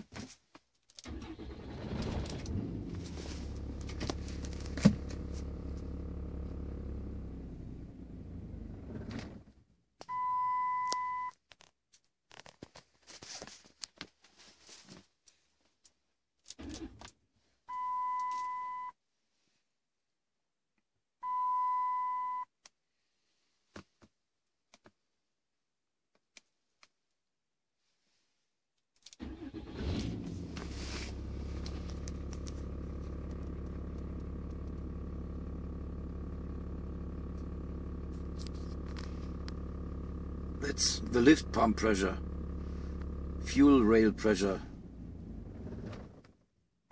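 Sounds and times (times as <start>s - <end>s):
diesel engine running: 1.1s - 9.2s, 29.2s - 46.1s.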